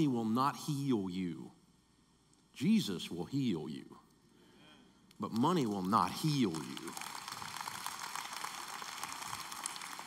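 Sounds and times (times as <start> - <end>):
audience applause: 6.2 - 10.0.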